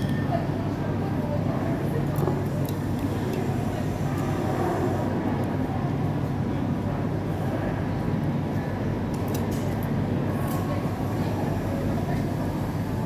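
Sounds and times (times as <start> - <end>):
clinks of tableware: 0.0 - 0.3
murmur of voices: 0.0 - 13.0.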